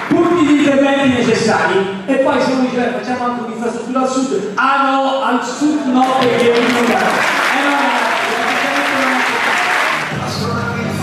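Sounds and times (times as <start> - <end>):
audience applauding: 6.0 - 10.3
music playing: 7.6 - 11.0.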